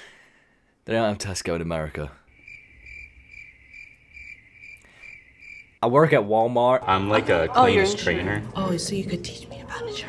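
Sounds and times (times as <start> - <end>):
crickets chirping: 2.2 - 5.8.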